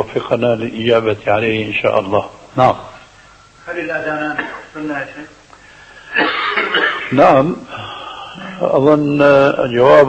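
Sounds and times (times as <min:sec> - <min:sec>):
man coughing: 0:06.1 - 0:07.2.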